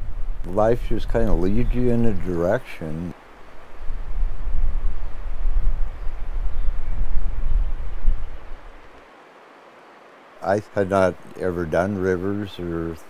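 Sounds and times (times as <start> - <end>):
wind buffeting microphone: 0.0 - 9.0.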